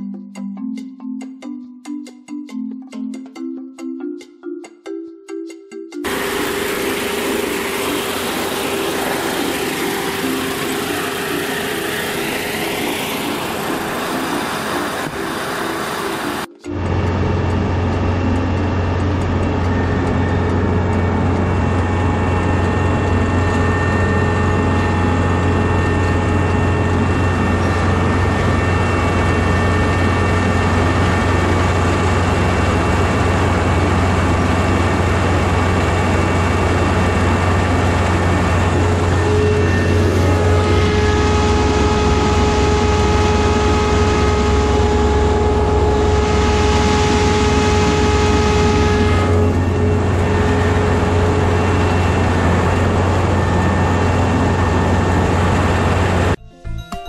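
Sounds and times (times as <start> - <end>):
combine harvester running: 6.0 - 56.4
low engine hum: 6.0 - 56.4.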